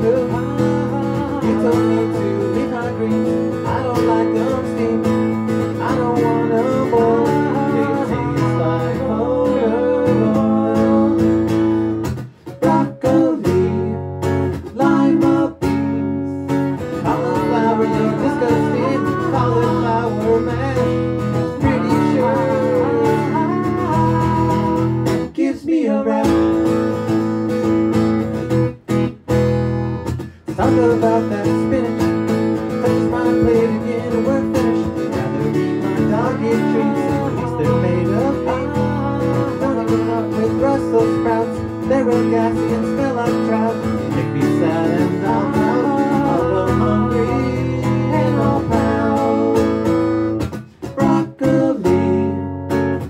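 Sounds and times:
man singing: 0.0s - 11.8s, 12.5s - 27.4s, 30.3s - 53.0s
acoustic guitar strumming: 0.0s - 53.0s.

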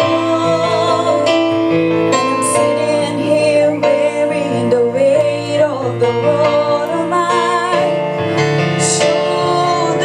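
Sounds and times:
keyboard playing piano chords: 0.0s - 10.0s
woman singing into a microphone: 0.0s - 10.0s.

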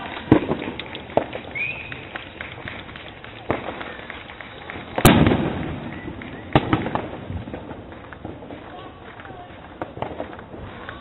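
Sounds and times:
firework bangs: 0.0s - 11.0s
firework pops and crackling: 0.0s - 11.0s.

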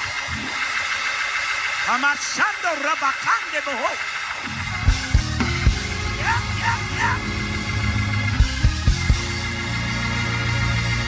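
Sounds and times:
crowd shouting and cheering: 1.8s - 11.0s.

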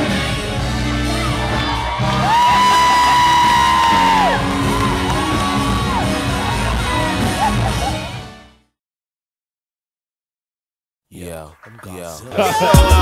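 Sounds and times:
live band music: 0.0s - 8.4s.

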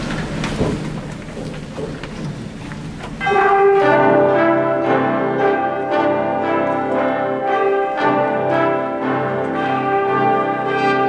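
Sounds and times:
audience noise: 0.0s - 11.0s
concert band sustained chord: 3.2s - 11.0s.

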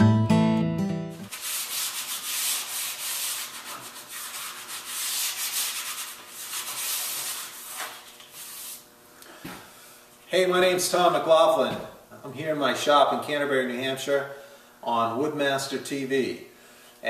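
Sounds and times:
sandpaper rubbing on wood: 1.3s - 8.8s.

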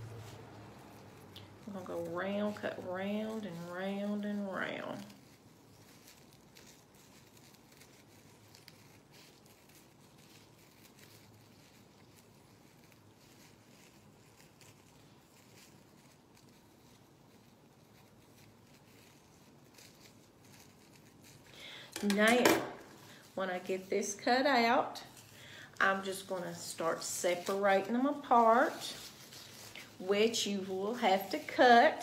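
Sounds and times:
plastic rustle: 0.0s - 32.0s
scissors snipping plastic: 21.9s - 23.0s.

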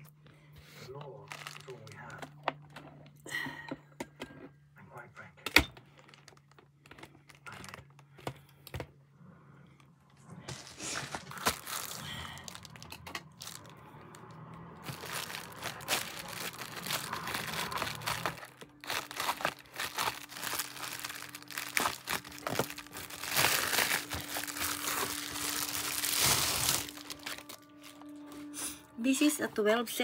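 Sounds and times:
plastic mailer crinkling: 1.2s - 2.7s, 5.9s - 8.8s, 10.5s - 28.1s.

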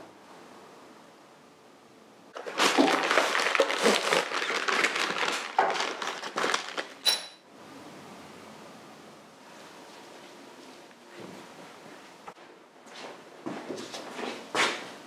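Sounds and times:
paper wrapping crinkling: 2.4s - 7.0s
bright metallic ping: 7.0s - 7.4s.

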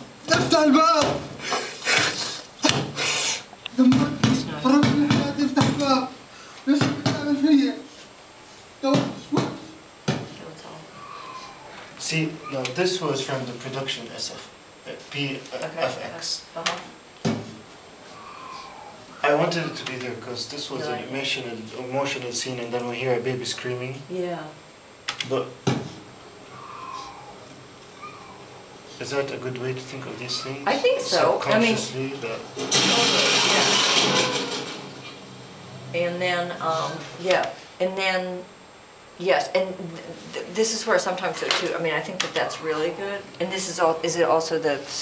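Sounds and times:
faint baby crying over speakers: 10.8s - 12.8s, 18.1s - 20.0s, 26.5s - 28.8s, 30.2s - 31.3s.

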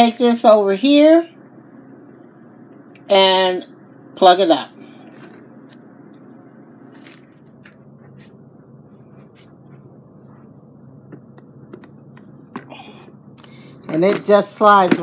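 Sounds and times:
low background hum: 0.0s - 15.0s.

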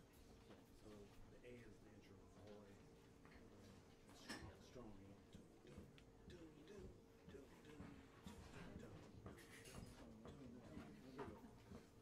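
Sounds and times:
quiet indistinct voices: 0.6s - 12.0s.

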